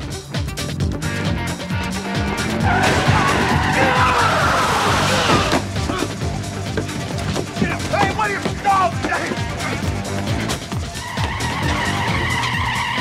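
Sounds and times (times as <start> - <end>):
dramatic action score music: 0.0 - 13.0
car tyres squealing: 2.3 - 13.0.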